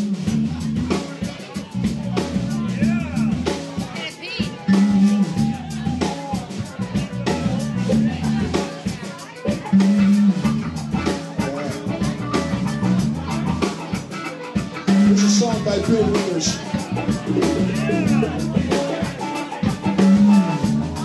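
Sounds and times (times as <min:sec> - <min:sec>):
drum hits: 0:00.0 - 0:11.6, 0:14.7 - 0:21.0
live band playing: 0:00.0 - 0:21.0
repeated bass notes: 0:00.0 - 0:21.0.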